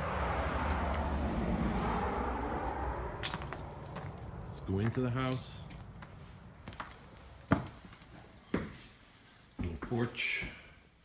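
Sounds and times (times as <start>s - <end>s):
passing road vehicle rumble: 0.0s - 8.0s.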